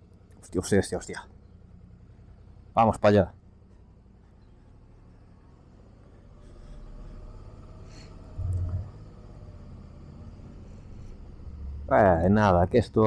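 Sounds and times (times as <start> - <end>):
motorcycle engine rumbling: 0.0 - 13.0.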